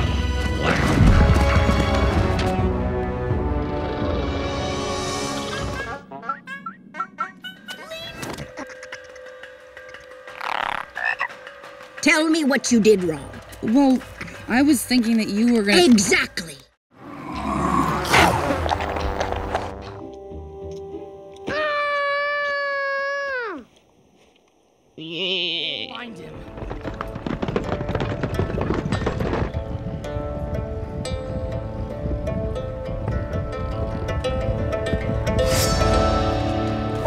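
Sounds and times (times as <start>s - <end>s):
orchestral background music: 0.0s - 6.1s, 29.8s - 37.0s
toad croaking: 10.3s - 11.4s
heavy animal footfalls: 26.3s - 29.9s.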